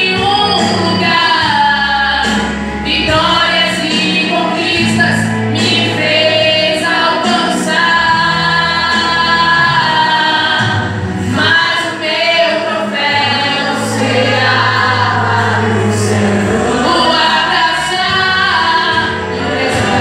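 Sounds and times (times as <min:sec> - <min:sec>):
low instrumental accompaniment: 0:00.0 - 0:20.0
woman singing through pa: 0:00.0 - 0:20.0
guitar playing: 0:00.1 - 0:20.0.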